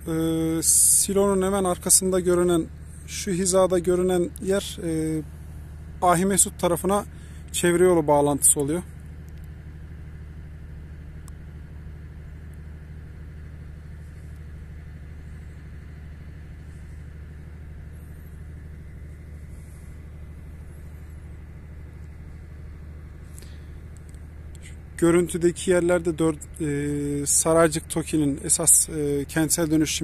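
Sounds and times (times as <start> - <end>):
low engine rumble: 0.0 - 30.0.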